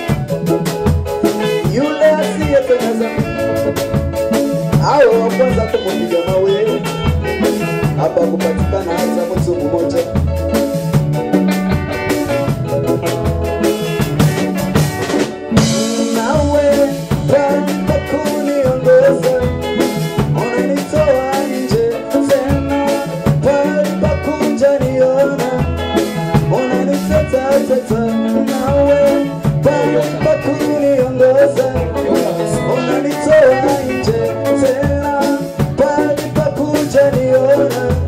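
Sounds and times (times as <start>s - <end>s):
band with drums and bass: 0.0s - 38.0s
lead singer singing: 1.2s - 10.3s, 15.5s - 38.0s.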